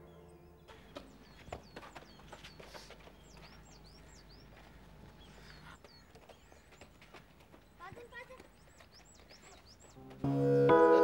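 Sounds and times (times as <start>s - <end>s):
small birds chirping: 0.0s - 11.0s
light footsteps: 0.7s - 10.3s.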